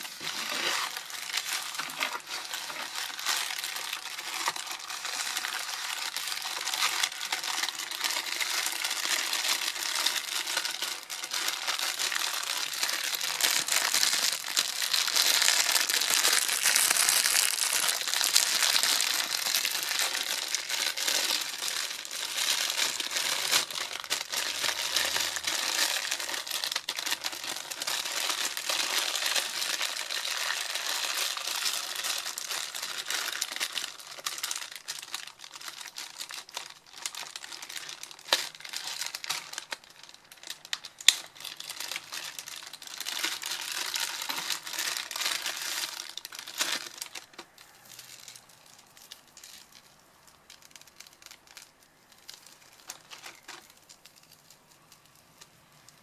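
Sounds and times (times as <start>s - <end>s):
plastic packaging crinkling: 0.0s - 56.0s.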